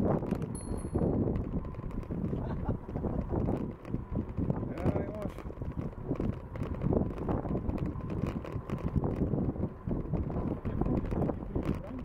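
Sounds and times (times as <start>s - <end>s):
bicycles rattling and rolling: 0.0s - 12.0s
wind on microphone: 0.0s - 12.0s.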